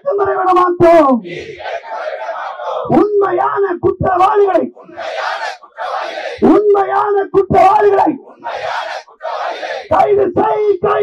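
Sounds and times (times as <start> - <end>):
man calling on microphone: 0.0 - 11.0
crowd shouting in unison: 1.2 - 3.0, 4.4 - 6.5, 7.8 - 10.4.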